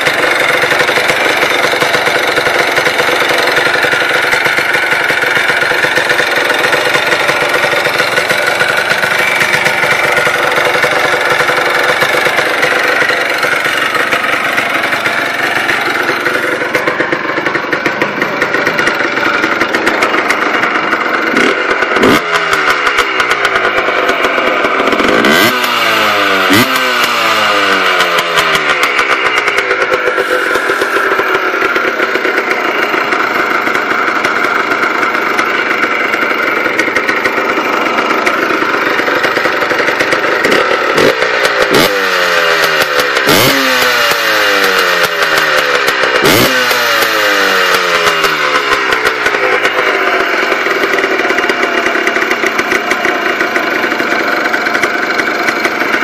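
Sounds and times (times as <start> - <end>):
two-stroke engine running: 0.0 - 56.0.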